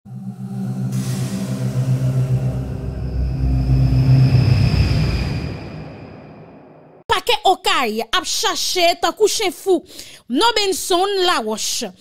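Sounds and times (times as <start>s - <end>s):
deep rumble: 0.1s - 7.0s
low synth tones: 0.1s - 7.0s
rushing whoosh: 0.1s - 7.0s.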